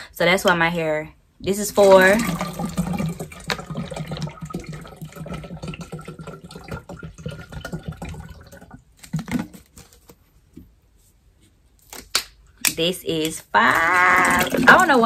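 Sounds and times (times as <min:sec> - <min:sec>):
water pouring into a jug: 0:01.7 - 0:09.5, 0:14.0 - 0:15.0.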